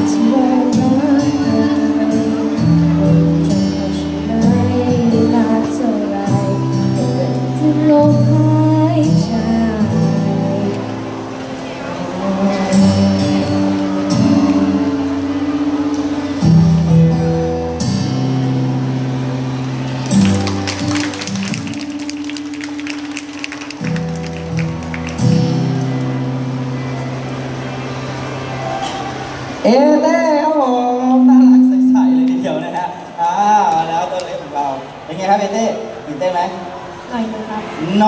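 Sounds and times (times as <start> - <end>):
pop backing track over speakers: 0.0 - 28.2, 28.8 - 34.7
man speaking: 30.9 - 34.2.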